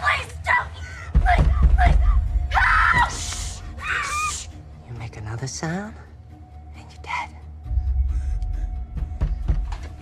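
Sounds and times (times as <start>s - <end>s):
low film score: 0.0s - 10.0s.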